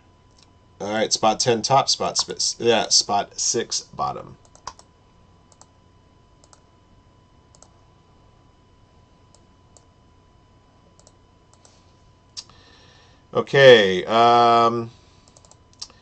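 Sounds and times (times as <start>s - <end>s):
computer keyboard and mouse clicks: 4.4s - 4.9s, 5.5s - 5.7s, 6.4s - 6.6s, 7.5s - 7.7s, 11.0s - 11.7s, 15.3s - 16.0s.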